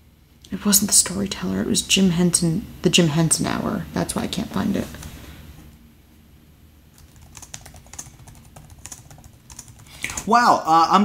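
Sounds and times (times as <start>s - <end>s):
computer keyboard typing: 7.0s - 10.3s.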